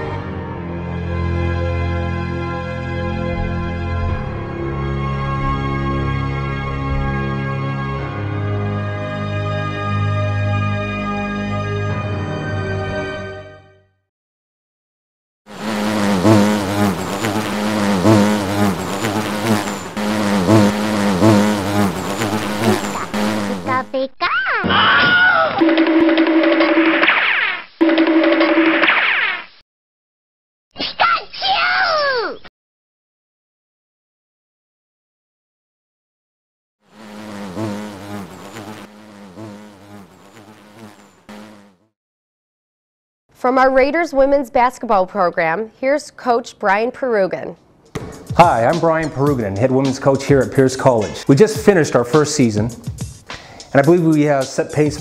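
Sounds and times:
cartoon bee buzzing: 15.5 - 24.0, 25.6 - 29.6, 36.9 - 41.9.

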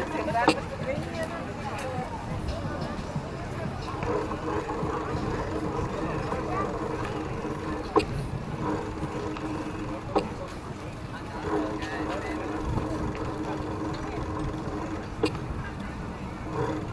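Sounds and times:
passers-by talking: 0.0 - 16.9
low rumble and hum: 3.6 - 16.9.

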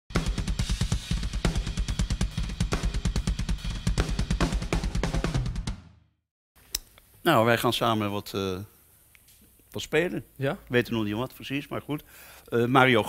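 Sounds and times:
drum kit groove: 0.1 - 5.9.

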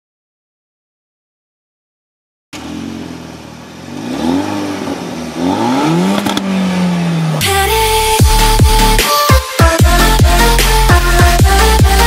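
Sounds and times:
car engine accelerating: 2.6 - 9.0
electronic music with heavy bass: 5.6 - 12.0.

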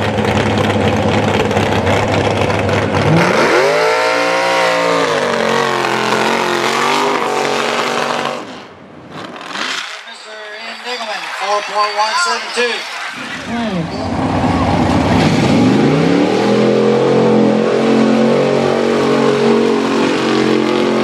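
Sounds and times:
truck engine revving: 0.0 - 10.2, 11.1 - 21.0.

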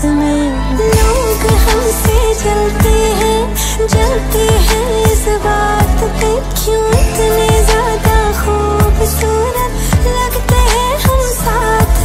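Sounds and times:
ornamented melodic lead line: 0.0 - 12.0
deep bass drum hits: 1.0 - 3.2, 4.0 - 6.2, 7.0 - 9.1.

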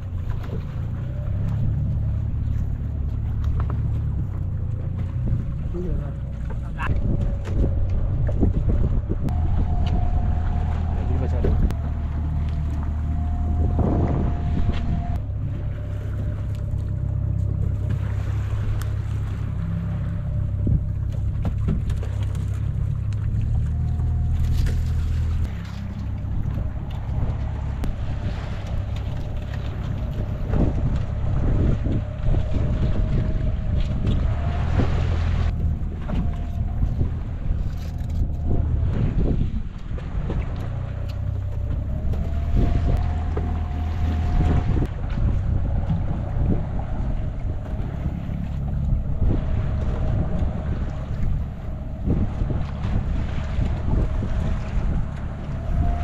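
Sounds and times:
boat engine running: 0.0 - 56.0
wind buffeting microphone: 0.0 - 56.0.

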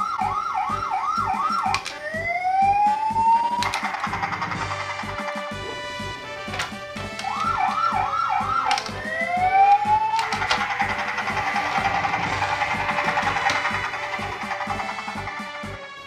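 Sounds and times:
background music with a beat: 0.0 - 16.0
toy siren warbling: 0.0 - 16.0.

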